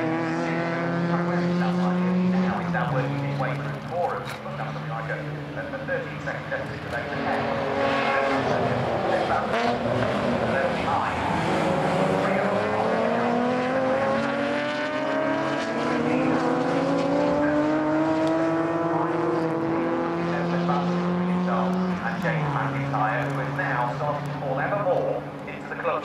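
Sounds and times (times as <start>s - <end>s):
race car engine revving: 0.0s - 26.0s.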